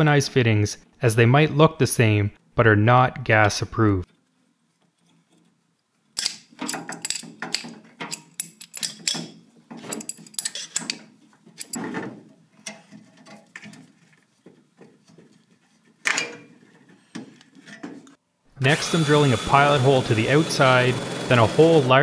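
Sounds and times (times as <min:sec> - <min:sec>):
metal pipe fittings clinking and scraping: 0:06.2 - 0:11.8.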